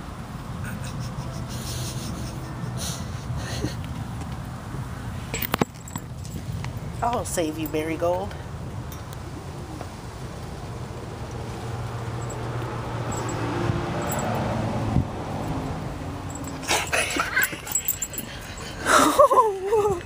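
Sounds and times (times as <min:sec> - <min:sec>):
knocks and rustles: 0:05.3 - 0:07.2.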